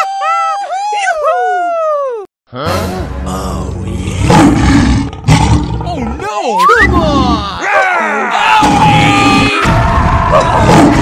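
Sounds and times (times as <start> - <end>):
rough animal roaring: 3.8 - 6.2.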